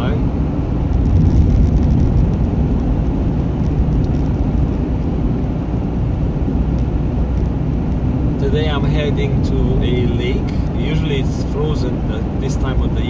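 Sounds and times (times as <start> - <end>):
car engine and tyres rumbling: 0.0 - 13.0.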